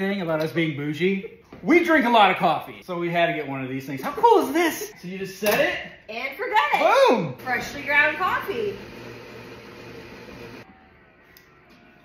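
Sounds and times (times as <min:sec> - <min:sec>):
coffee machine grinding beans: 0:07.4 - 0:10.7.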